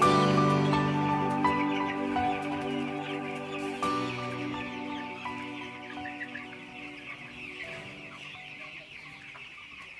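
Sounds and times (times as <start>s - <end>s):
background music: 0.0s - 9.8s
chickens clucking: 0.0s - 9.9s.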